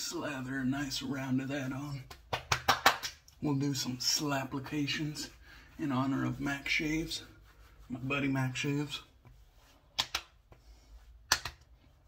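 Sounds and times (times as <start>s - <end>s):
palms slapping cheeks: 2.0s - 3.4s, 9.9s - 11.8s.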